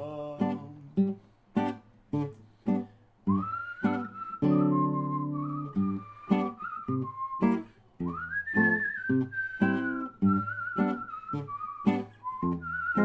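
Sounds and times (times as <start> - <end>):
strummed classical guitar: 0.0 - 13.0
man whistling folk melody: 3.3 - 13.0.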